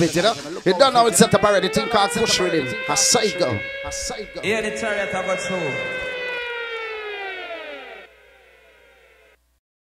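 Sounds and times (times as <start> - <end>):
siren-like tone sliding down: 0.7 - 9.4.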